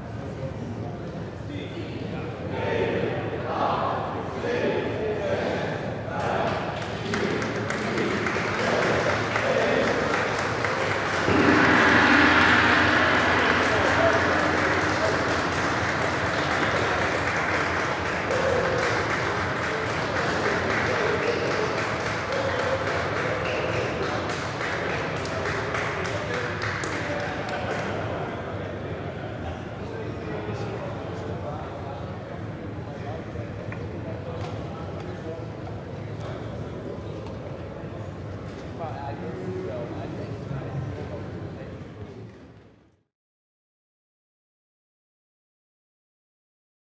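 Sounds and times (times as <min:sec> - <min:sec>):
clapping and cheering: 0:06.8 - 0:28.0
crowd voices: 0:08.6 - 0:21.9
gong struck and humming: 0:11.0 - 0:19.7.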